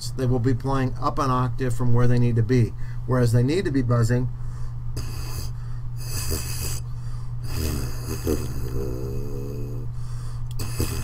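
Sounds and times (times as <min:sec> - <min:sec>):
breaths: 0:02.8 - 0:03.1, 0:04.3 - 0:06.0, 0:06.9 - 0:07.4, 0:09.9 - 0:10.9
lips buzzing into mouthpiece: 0:05.0 - 0:11.0.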